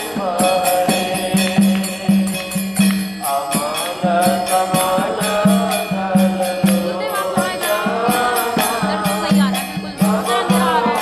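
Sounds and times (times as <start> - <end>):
jingling percussion: 0.0 - 11.0
low drum beat: 0.0 - 11.0
voices singing a chant: 0.0 - 11.0.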